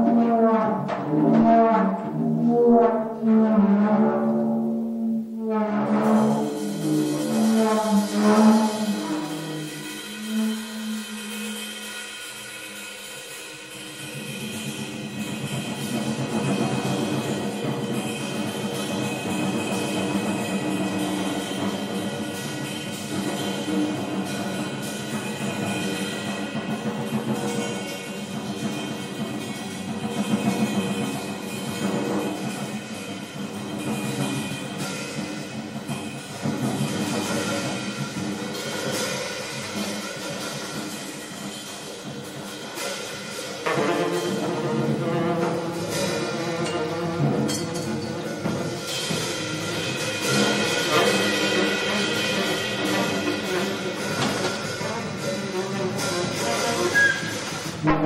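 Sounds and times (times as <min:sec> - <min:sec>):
fast drumming on snare and toms: 0:14.1 - 0:58.0.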